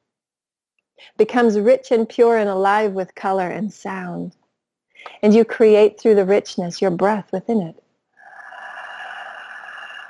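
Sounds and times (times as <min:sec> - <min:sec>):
woman breathing into microphone: 0:08.2 - 0:10.0.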